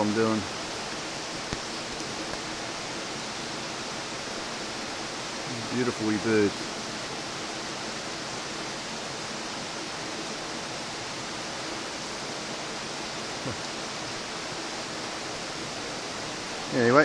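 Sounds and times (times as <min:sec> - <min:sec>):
river water rushing: 0:00.0 - 0:17.0.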